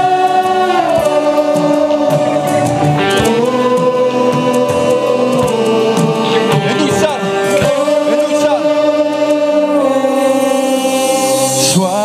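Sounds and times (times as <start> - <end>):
band with electric guitars and drums: 0.0 - 12.0
group of singers holding notes: 0.0 - 12.0.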